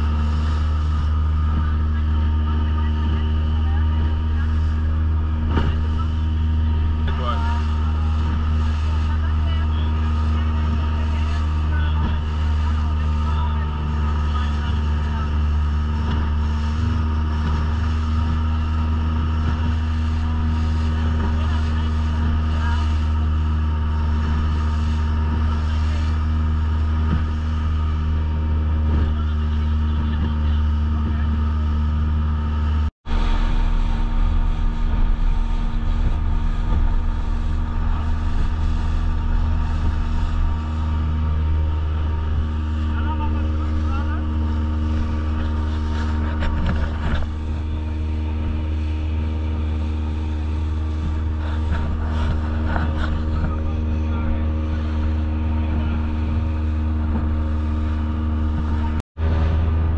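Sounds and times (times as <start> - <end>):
boat motor droning: 0.0 - 59.9
water noise: 0.0 - 59.9
wind noise: 33.0 - 59.9.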